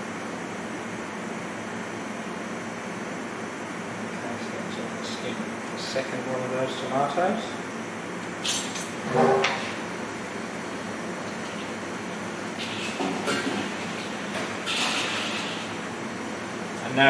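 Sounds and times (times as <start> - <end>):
steady background hum: 0.0 - 17.0.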